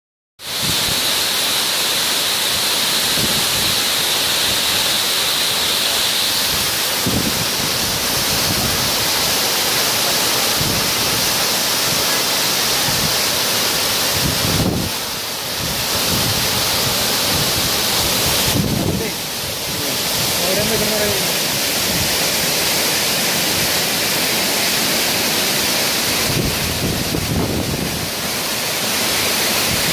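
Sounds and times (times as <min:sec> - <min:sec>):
waterfall rushing onto rocks: 0:00.4 - 0:29.9.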